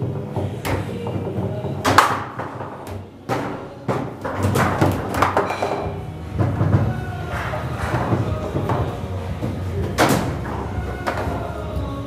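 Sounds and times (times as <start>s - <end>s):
foosball table clacks: 0.0s - 12.0s.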